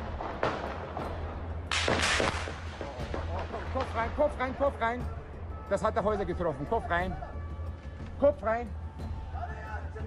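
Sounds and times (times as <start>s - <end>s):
echoing gunshots: 0.0s - 4.1s.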